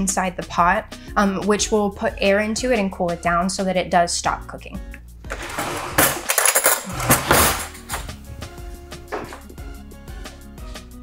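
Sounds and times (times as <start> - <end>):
background music: 0.0 - 11.0
spatula scraping metal pot: 5.3 - 8.0.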